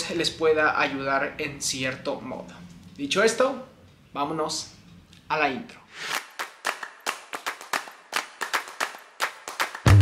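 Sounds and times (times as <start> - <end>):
sharp hand claps: 6.1 - 10.0.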